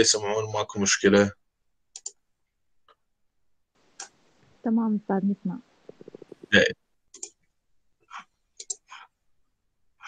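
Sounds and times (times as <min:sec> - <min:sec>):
faint mouse clicks: 0:01.9 - 0:02.2, 0:08.6 - 0:08.9.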